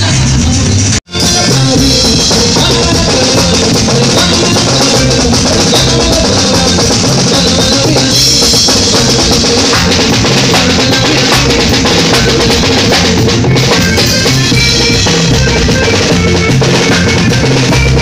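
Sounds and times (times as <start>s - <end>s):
bass guitar: 0.0s - 18.0s
drum kit beat: 0.0s - 18.0s
live band through loudspeakers: 0.0s - 18.0s.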